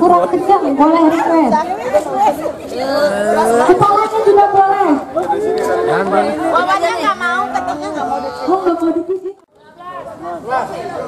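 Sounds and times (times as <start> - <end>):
lively group chatter: 0.0 - 11.0.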